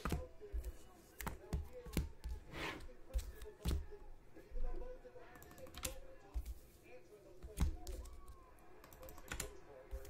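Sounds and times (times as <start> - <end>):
typing on computer keyboard: 5.3 - 6.0, 7.5 - 10.0.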